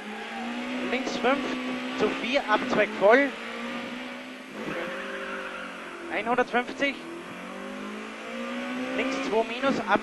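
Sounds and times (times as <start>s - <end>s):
car engine under load: 0.0s - 10.0s.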